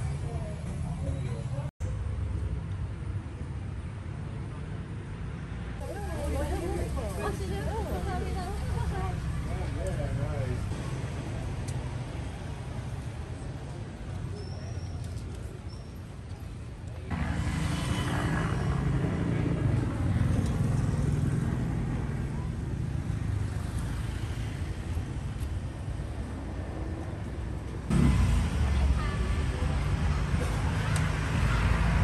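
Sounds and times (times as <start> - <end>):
car engines passing: 1.8 - 14.3, 17.0 - 32.0
motorbike engines passing: 5.7 - 15.6, 17.0 - 32.0.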